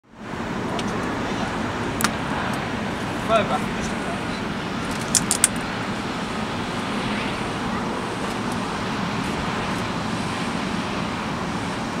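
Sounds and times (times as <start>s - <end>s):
jet engines running: 0.0s - 12.0s.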